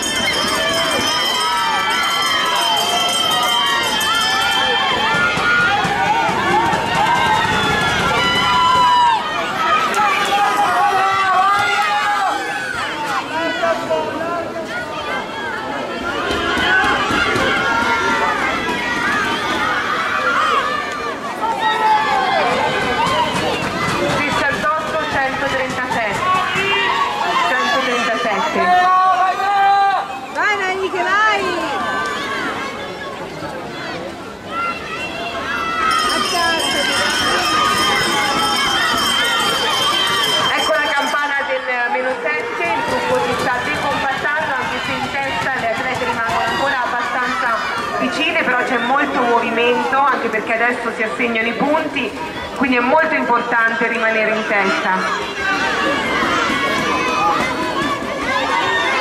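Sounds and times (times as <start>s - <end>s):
spectators shouting and cheering: 0.0s - 59.0s.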